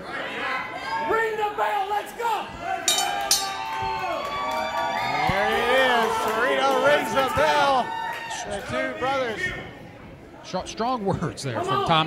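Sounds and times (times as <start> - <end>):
ring bell ringing: 2.9 - 3.8.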